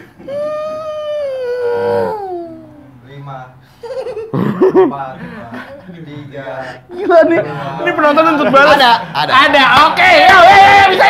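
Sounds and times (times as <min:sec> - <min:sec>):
high falsetto howl: 0:00.3 - 0:02.9
lower voice howling: 0:00.3 - 0:02.9.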